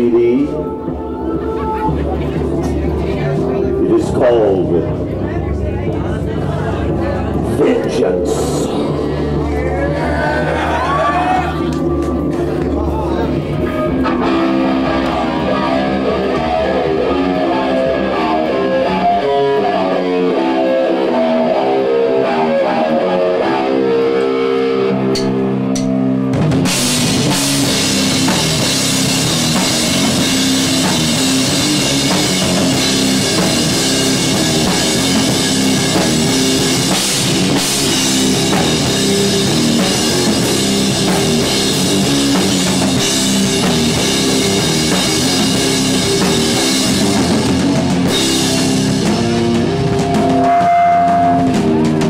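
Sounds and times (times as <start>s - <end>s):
guitar playing chords: 0.0s - 52.0s
drums with cymbals: 25.2s - 52.0s.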